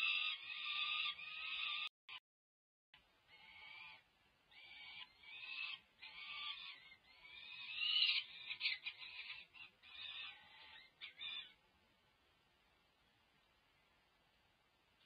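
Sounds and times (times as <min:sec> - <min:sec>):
falcon chicks begging calls: 0:00.0 - 0:01.9, 0:03.4 - 0:11.6.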